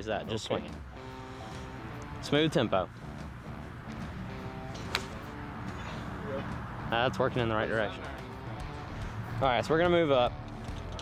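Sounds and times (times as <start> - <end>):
background music: 0.0 - 11.0
golf club striking ball: 3.9 - 6.0.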